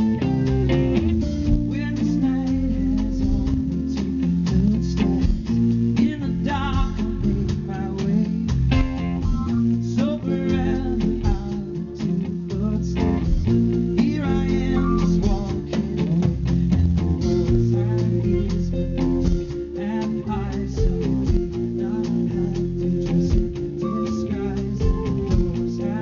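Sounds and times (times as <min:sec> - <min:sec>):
bass: 0:00.0 - 0:26.0
drums beat: 0:00.0 - 0:26.0
electric guitar: 0:00.0 - 0:26.0
man singing: 0:01.5 - 0:26.0.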